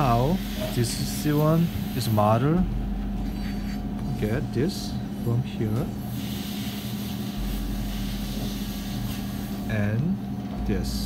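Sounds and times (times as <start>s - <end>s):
machinery hum and hiss: 0.0s - 11.0s.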